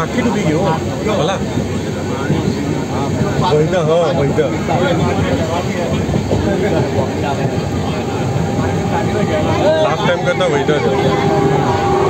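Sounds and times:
moving train rumble: 0:00.0 - 0:12.0
people talking: 0:00.0 - 0:12.0.

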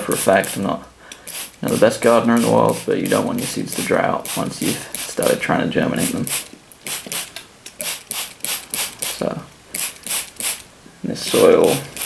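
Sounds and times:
water spray squirts: 0:01.3 - 0:05.2, 0:06.0 - 0:09.2, 0:09.8 - 0:10.6.

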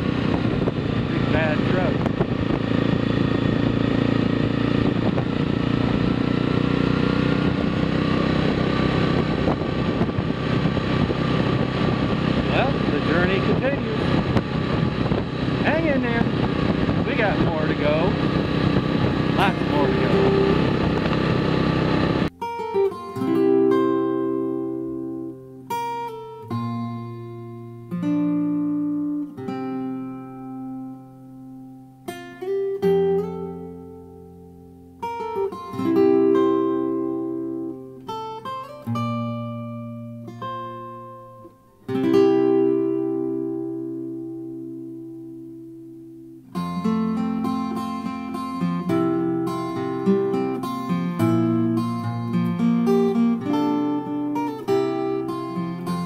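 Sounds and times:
atv engine running: 0:00.0 - 0:22.4, 0:46.9 - 0:56.0
acoustic guitar plucked notes: 0:07.2 - 0:56.0.

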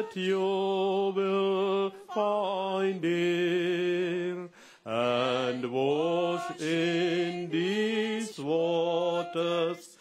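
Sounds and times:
person singing a slow chant: 0:00.0 - 0:10.0.

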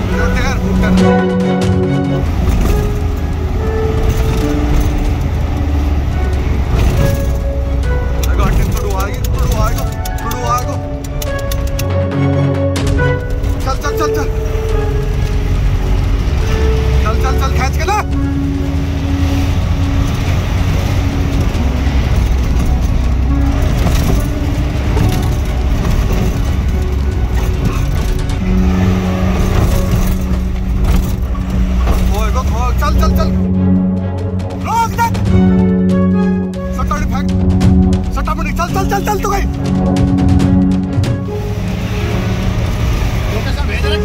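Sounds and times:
car engine and road rumble: 0:00.0 - 0:44.0.

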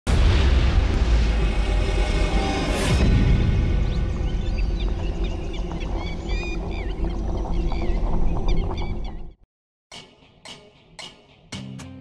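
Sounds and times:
loud low steady drone: 0:00.1 - 0:05.7
low boom: 0:00.1 - 0:09.4
small birds chirping: 0:03.8 - 0:09.4.

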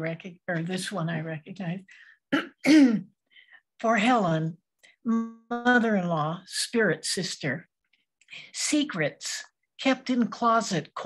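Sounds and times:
woman clearing her throat: 0:02.3 - 0:03.1.

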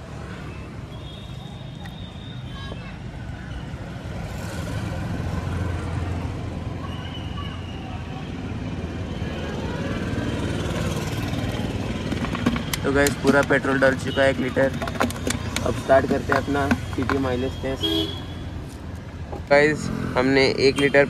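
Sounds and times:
road traffic rumbling: 0:00.0 - 0:21.0.

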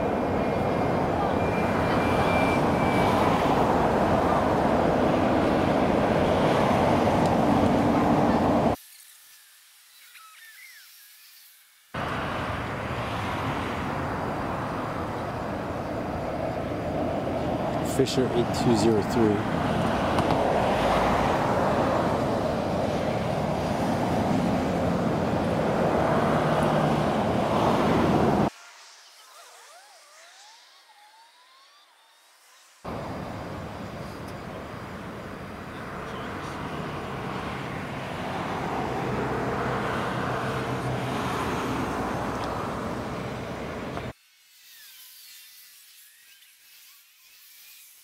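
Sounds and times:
sped-up traffic noise: 0:00.0 - 0:48.0.

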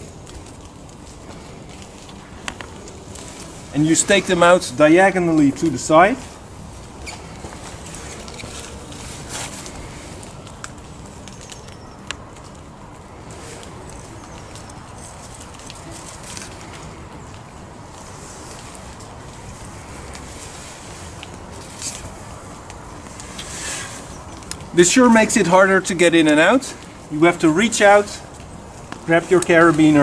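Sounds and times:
leaves rustling: 0:00.0 - 0:30.0
low background noise: 0:00.0 - 0:30.0.

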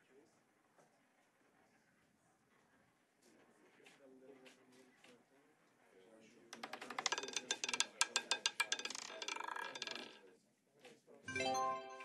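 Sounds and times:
roulette ball clattering: 0:06.6 - 0:10.3.

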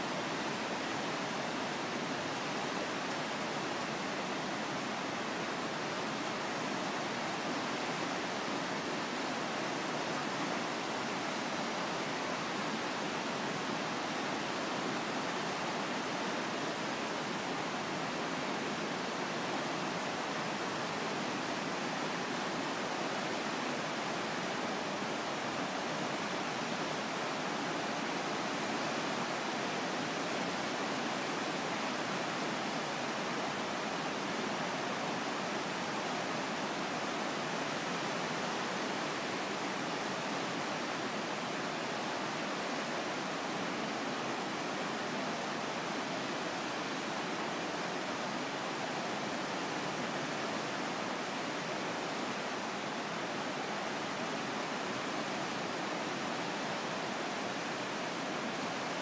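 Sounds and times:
whitewater rapids rushing: 0:00.0 - 0:59.0.

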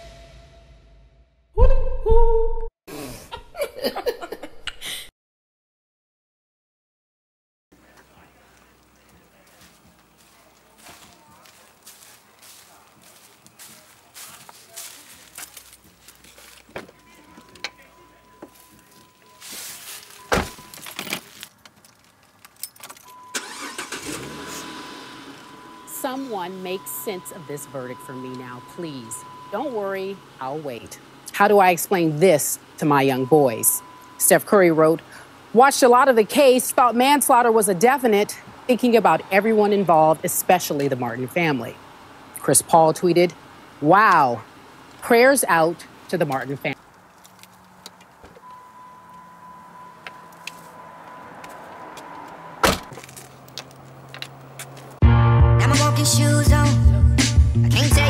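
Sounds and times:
car engine cranking and idling: 0:07.8 - 0:37.8, 0:38.4 - 0:55.0
keys jingling in ignition: 0:14.8 - 0:24.1
electronic warning tone: 0:25.1 - 0:31.1, 0:31.9 - 0:34.4, 0:48.4 - 0:51.7.

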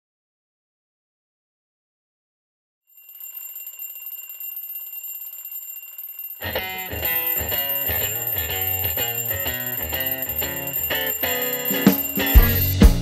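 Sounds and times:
alarm clock ringing: 0:03.0 - 0:13.0
blues-rock band music: 0:06.4 - 0:13.0.

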